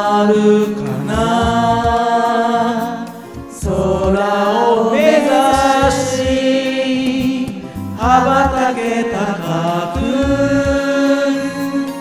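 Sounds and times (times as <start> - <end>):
karaoke backing track with bass: 0.0 - 12.0
people singing karaoke: 0.0 - 12.0.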